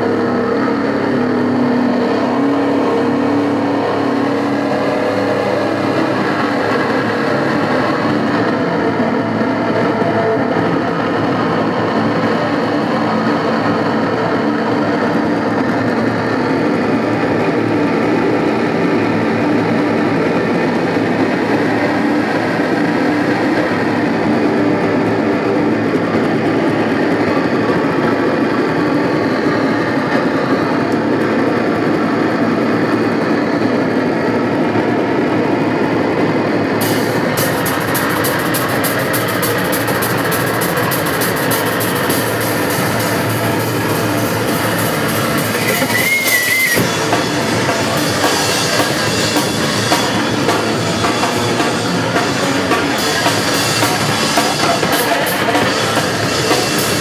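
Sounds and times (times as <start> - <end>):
rapid cymbal hits: 0.0 - 30.3, 36.6 - 57.0
distorted electric guitar droning: 0.0 - 57.0.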